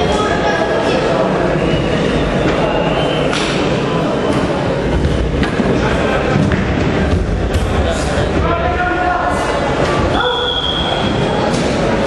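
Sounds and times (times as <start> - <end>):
referee's whistle blast: 10.2 - 11.1.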